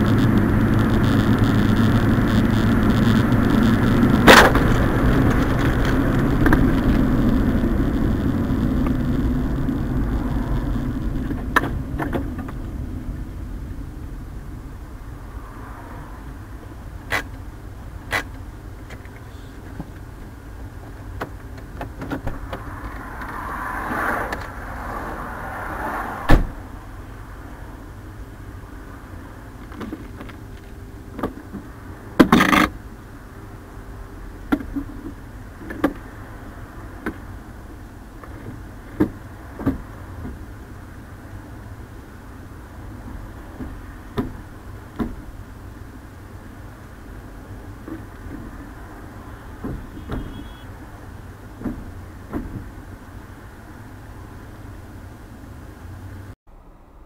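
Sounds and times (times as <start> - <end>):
road and engine rumble in car: 0.0 - 57.0
sharp knocks and thumps: 43.6 - 45.3, 51.6 - 52.7.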